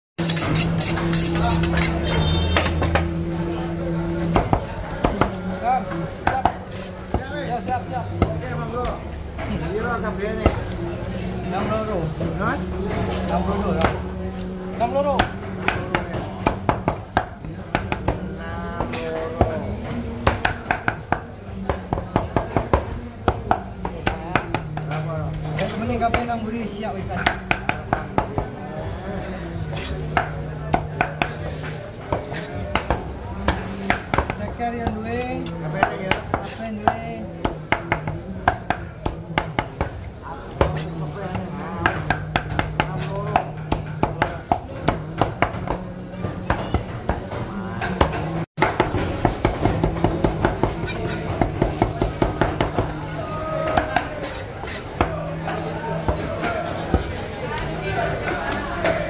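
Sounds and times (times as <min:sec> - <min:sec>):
knife chopping on wooden block: 0:29.7 - 0:35.0.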